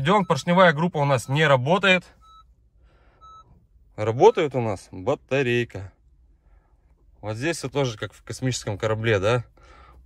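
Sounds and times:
short electronic beeps: 0:00.0 - 0:02.6, 0:03.2 - 0:03.6.

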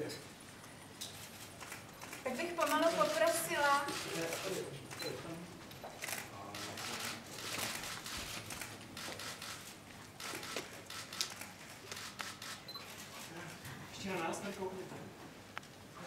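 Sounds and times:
camera shutters clicking: 0:01.6 - 0:05.2, 0:06.0 - 0:13.1.

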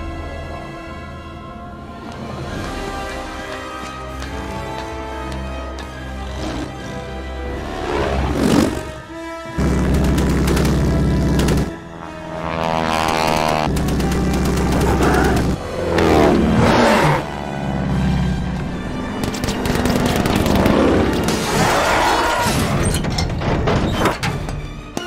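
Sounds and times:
biplane engines droning: 0:00.0 - 0:21.3
orchestral music: 0:00.0 - 0:25.0
machine-gun fire: 0:09.6 - 0:11.7, 0:13.7 - 0:15.6
plane swooping past: 0:11.7 - 0:13.7.

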